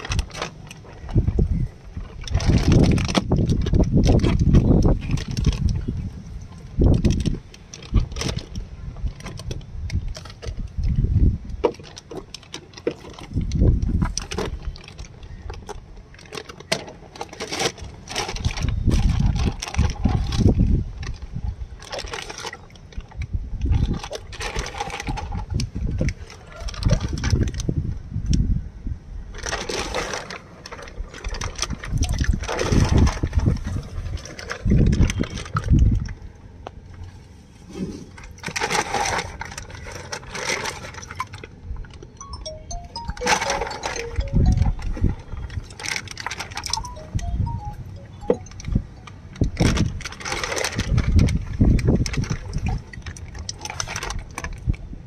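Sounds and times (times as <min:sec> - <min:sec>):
water sloshing and splashing: 0:00.0 - 0:05.9, 0:11.6 - 0:27.6, 0:29.4 - 0:36.3, 0:37.0 - 0:42.0, 0:43.2 - 0:54.8.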